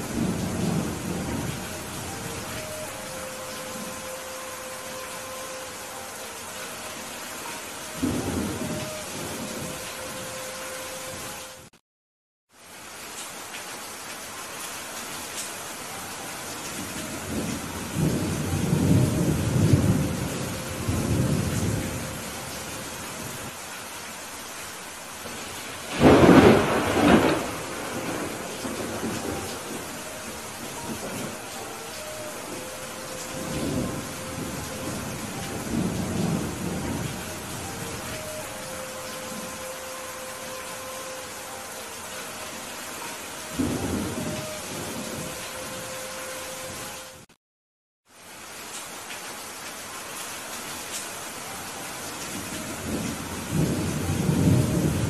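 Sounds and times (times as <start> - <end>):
rolling thunder rumbles: 0.0 - 4.0, 17.0 - 22.4, 25.2 - 39.6, 43.5 - 45.4, 52.5 - 55.0
heavy rain: 0.0 - 11.8, 12.5 - 47.4, 48.0 - 55.0
sharp thunderclap: 25.9 - 29.8.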